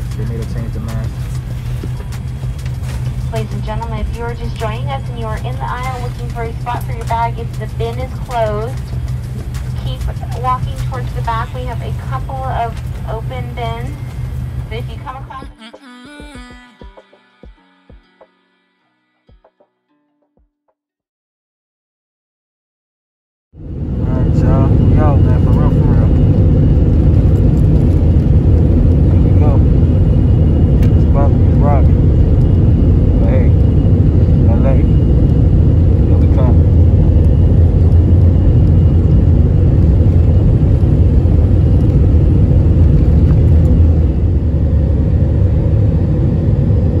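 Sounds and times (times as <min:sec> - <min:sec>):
jet engines and runway rumble: 0:00.0 - 0:15.5, 0:23.6 - 0:47.0.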